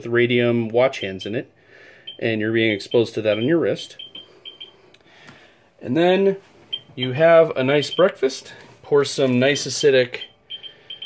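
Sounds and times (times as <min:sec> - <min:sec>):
soft breath: 0:01.6 - 0:02.2, 0:04.2 - 0:05.7
geiger counter beeps: 0:02.0 - 0:04.8, 0:07.8 - 0:08.2, 0:09.8 - 0:11.0
person speaking: 0:02.1 - 0:04.2, 0:05.8 - 0:10.4.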